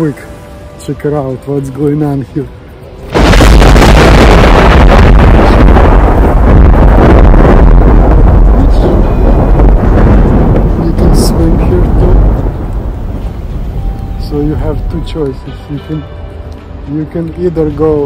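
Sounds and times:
thunder rumbling: 3.0s - 15.5s.

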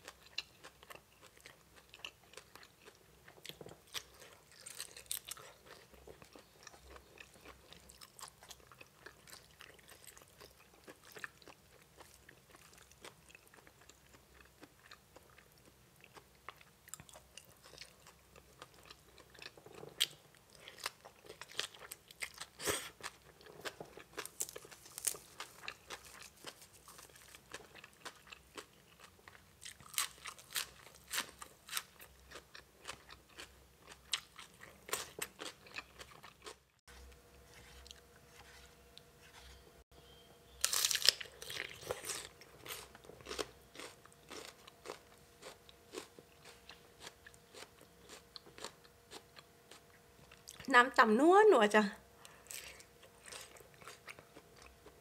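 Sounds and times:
person chewing crunchy food: 0.0s - 39.7s, 40.5s - 50.7s, 52.2s - 55.0s.

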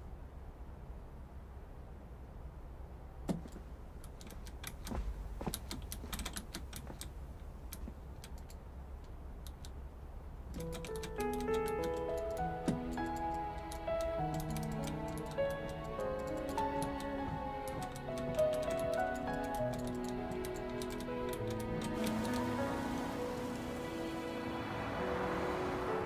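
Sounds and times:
keyboard keys clicking: 4.2s - 7.1s, 10.5s - 22.5s
background music with held notes: 10.6s - 26.0s.

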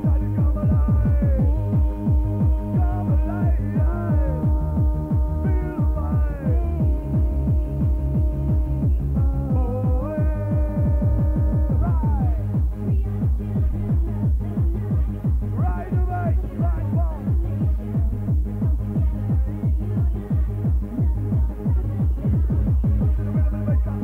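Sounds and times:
pounding kick drum: 0.0s - 24.0s.

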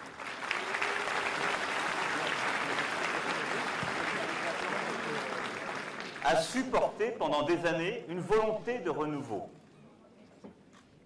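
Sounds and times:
large audience applauding: 0.0s - 6.8s.

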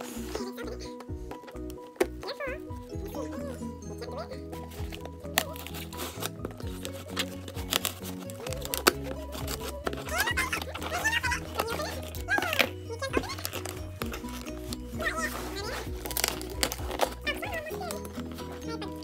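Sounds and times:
background music: 0.0s - 19.0s
person speaking: 2.2s - 6.2s, 8.3s - 19.0s
scissors cutting packing tape: 5.2s - 19.0s.

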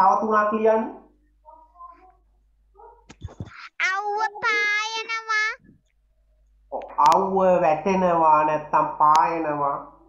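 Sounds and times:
child chanting: 3.6s - 5.6s.

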